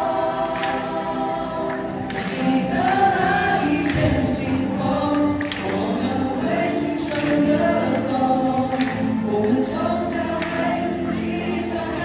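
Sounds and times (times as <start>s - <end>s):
group singing pop song: 0.0s - 12.0s.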